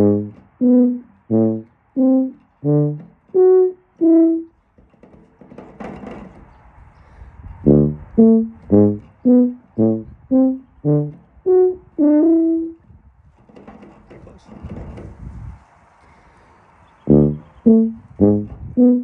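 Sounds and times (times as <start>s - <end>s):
tuba playing short notes: 0.0s - 4.5s, 7.6s - 12.8s, 17.1s - 19.0s.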